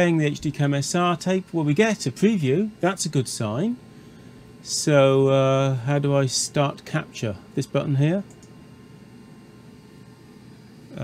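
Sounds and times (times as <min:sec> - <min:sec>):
faint steady whines: 0:00.0 - 0:11.0
low hiss of equipment: 0:00.0 - 0:11.0.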